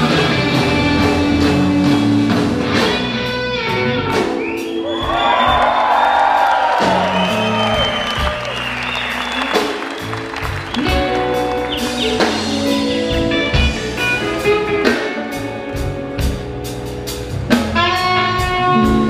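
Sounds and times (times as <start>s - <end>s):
blues-rock band playing: 0.0s - 19.0s
lead guitar bending notes: 10.2s - 19.0s.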